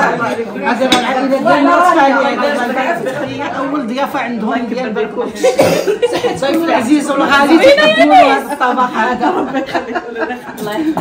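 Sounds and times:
person coughing: 0:05.5 - 0:06.0
women talking: 0:06.1 - 0:11.0.

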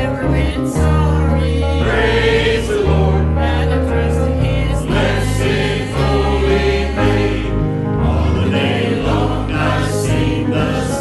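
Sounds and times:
church choir singing a hymn: 0:00.0 - 0:11.0
instrumental accompaniment: 0:00.0 - 0:11.0
sustained bass notes: 0:00.0 - 0:11.0.

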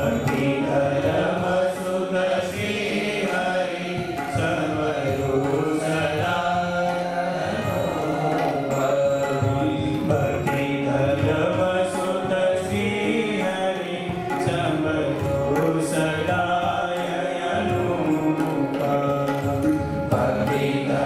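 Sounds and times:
congregation chanting: 0:00.0 - 0:06.8.

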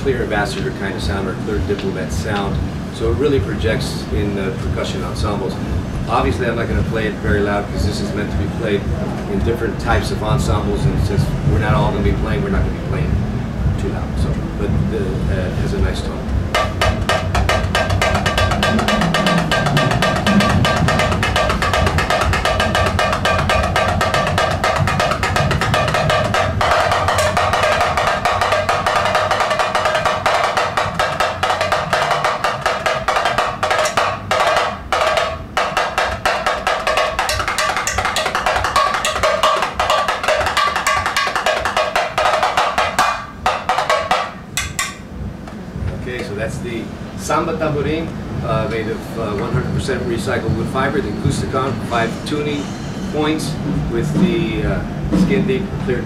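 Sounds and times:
small hand drum struck with stick: 0:16.4 - 0:45.1.

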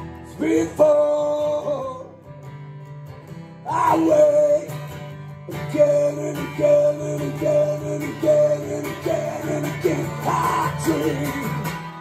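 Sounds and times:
acoustic guitar strumming: 0:00.0 - 0:12.0
man singing long notes: 0:03.7 - 0:04.8, 0:05.5 - 0:12.0.

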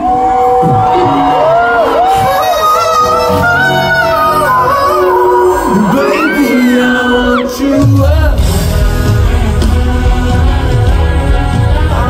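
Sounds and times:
live band playing: 0:00.0 - 0:12.0
man singing: 0:00.6 - 0:12.0.

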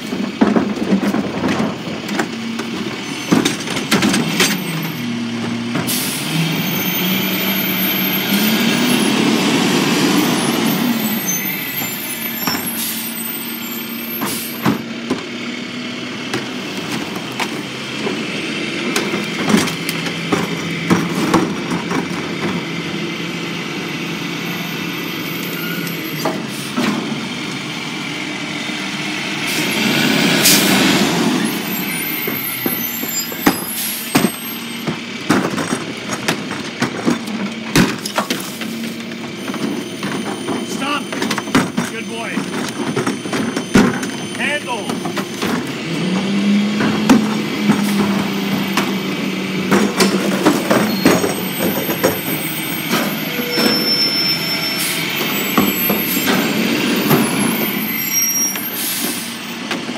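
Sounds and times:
knocks and clatter of trash: 0:00.0 - 0:06.1, 0:11.7 - 0:12.9, 0:14.2 - 0:15.4, 0:16.2 - 0:23.0, 0:32.0 - 0:53.9, 0:55.2 - 0:57.8
garbage truck engine revving: 0:00.0 - 0:59.9.

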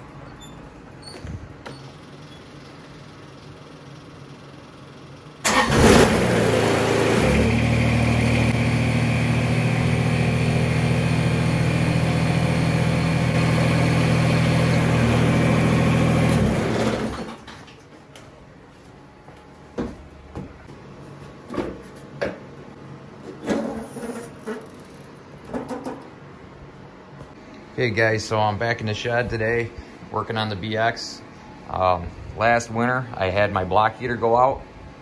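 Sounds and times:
diesel tractor engine idling: 0:05.4 - 0:17.2.

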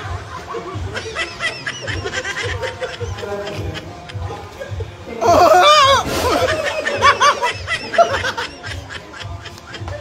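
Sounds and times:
background music with steady beat: 0:00.0 - 0:10.0
snickering laughter: 0:00.0 - 0:10.0.

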